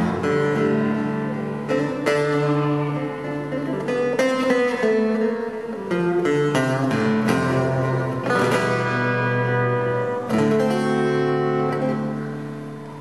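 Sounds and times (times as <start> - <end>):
acoustic guitar strummed chords: 0.0 - 13.0.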